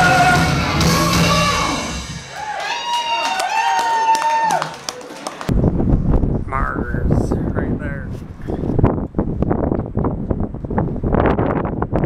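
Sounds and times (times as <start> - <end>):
wind buffeting microphone: 5.5 - 12.0.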